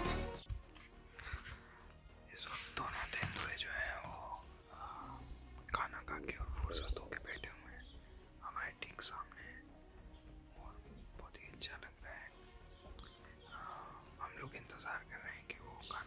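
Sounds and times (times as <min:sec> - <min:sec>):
man whispering: 0:02.2 - 0:09.8, 0:10.5 - 0:12.5, 0:13.4 - 0:16.0.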